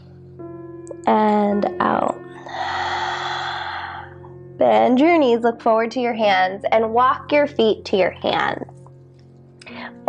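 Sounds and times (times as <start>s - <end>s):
soft background music: 0.0s - 10.0s
woman exhaling: 2.4s - 4.2s.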